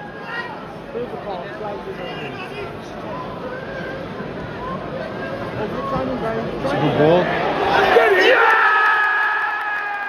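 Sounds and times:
stadium crowd shouting: 0.0s - 10.0s.

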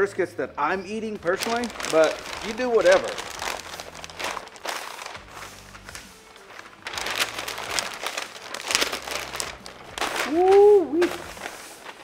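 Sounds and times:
paper rustling and crinkling: 1.2s - 12.0s.

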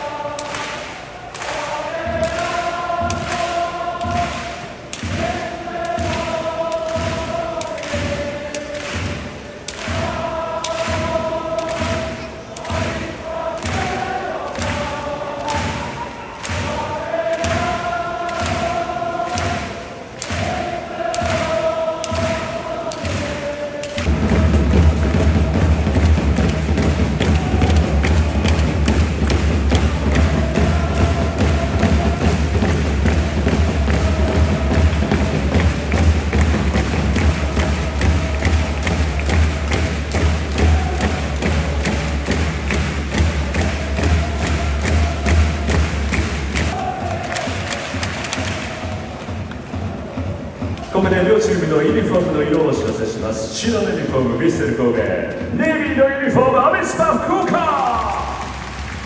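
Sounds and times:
crowd chanting in unison: 0.0s - 54.7s
drum beats: 0.0s - 59.0s.

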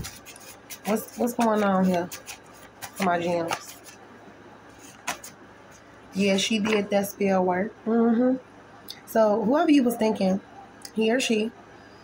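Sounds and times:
card deck rustling: 0.0s - 4.0s, 4.8s - 5.9s
card snap: 5.0s - 5.3s.

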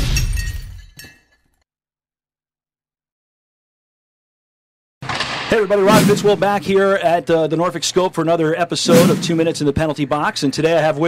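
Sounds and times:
glass shattering crash: 0.0s - 1.4s.

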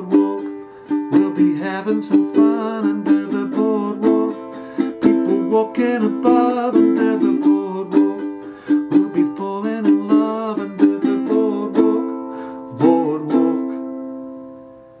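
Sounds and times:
ukulele strumming: 0.0s - 15.0s.

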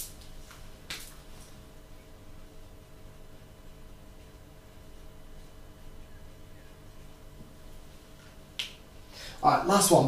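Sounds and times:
faint room hum: 0.0s - 10.0s.

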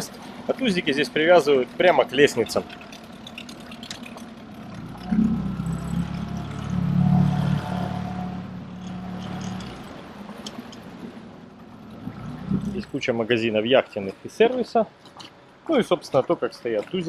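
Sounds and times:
outboard motor humming: 0.0s - 15.6s
faint water sounds: 0.0s - 17.0s.

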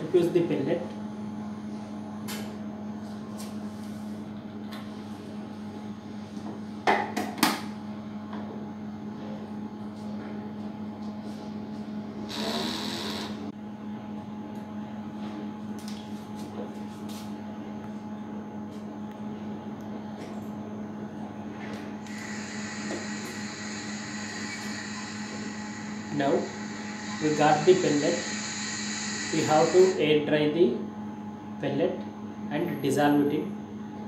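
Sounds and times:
low electrical hum: 0.0s - 34.0s.

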